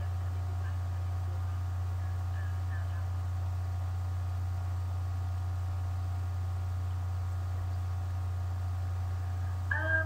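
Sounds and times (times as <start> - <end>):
woman speaking: 0.0 - 3.2, 9.7 - 10.0
faint steady whine: 0.0 - 10.0
low electrical hum: 0.0 - 10.0.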